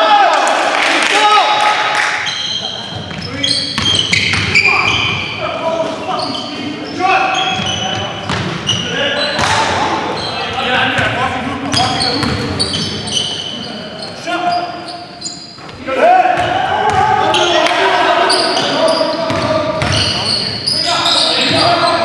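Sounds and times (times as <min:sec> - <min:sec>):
players calling out: 0:00.0 - 0:22.0
sneaker squeaks: 0:02.1 - 0:22.0.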